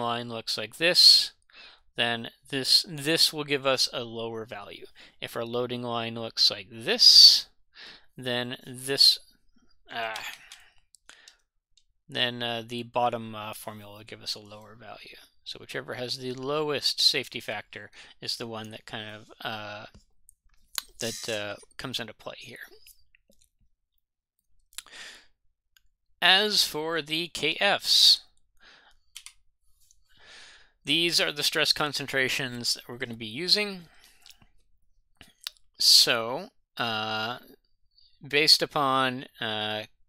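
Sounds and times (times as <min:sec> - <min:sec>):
man saying uh: 0:21.0 - 0:22.8.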